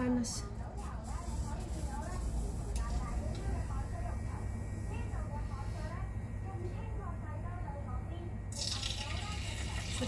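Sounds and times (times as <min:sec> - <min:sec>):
low steady hum: 0:00.0 - 0:10.0
oil sizzling in a wok: 0:08.5 - 0:10.0.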